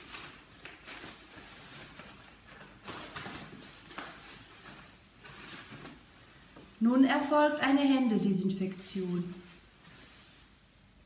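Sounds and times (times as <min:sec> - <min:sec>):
plastic overshoe rustling: 0:00.0 - 0:06.8
coverall fabric rustling: 0:00.0 - 0:11.0.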